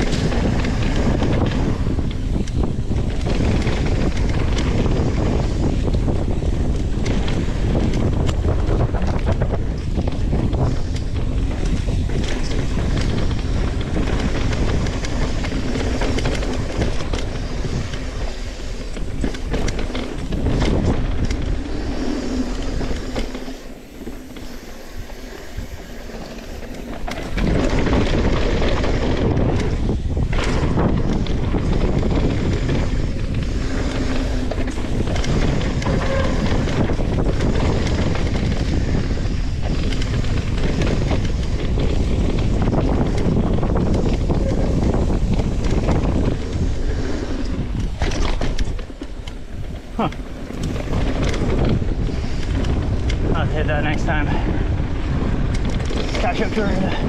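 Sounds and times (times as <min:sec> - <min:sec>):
bike rattle: 0:00.0 - 0:57.0
wind buffeting microphone: 0:00.0 - 0:57.0.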